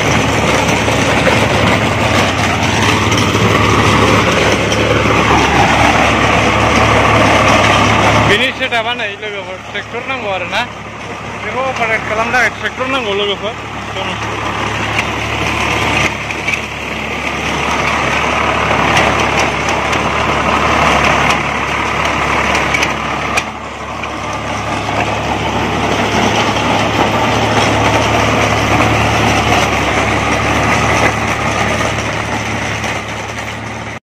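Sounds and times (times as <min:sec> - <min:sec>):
sharp clicks and knocks: 0:00.0 - 0:33.7
tractor diesel engine under load: 0:00.0 - 0:34.0
trencher chain cutting soil: 0:00.0 - 0:34.0.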